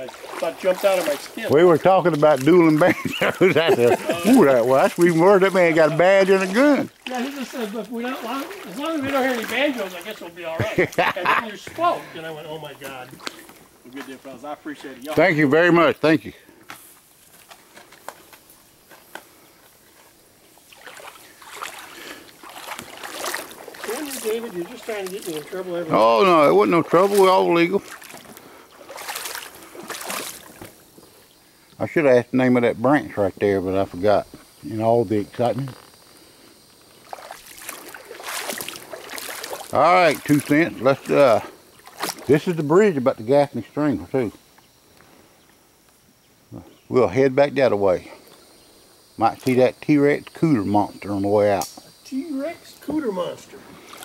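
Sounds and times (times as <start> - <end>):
paddle splashing in water: 0.0 - 11.1, 19.8 - 30.9, 36.9 - 42.5, 52.9 - 54.0
water dripping: 0.0 - 11.8, 20.5 - 31.0, 36.8 - 42.8
man speaking: 0.0 - 13.2, 13.9 - 16.4, 23.8 - 27.9, 31.8 - 35.8, 39.7 - 41.5, 49.2 - 53.7
faint steady hiss: 0.0 - 54.0.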